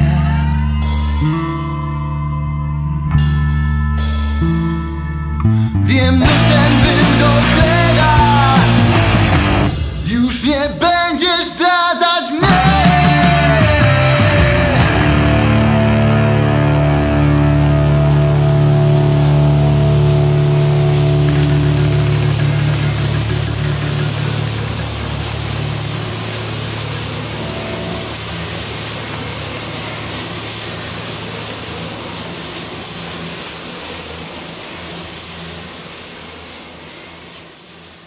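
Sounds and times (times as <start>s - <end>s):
rock band held chord: 0.0s - 31.5s.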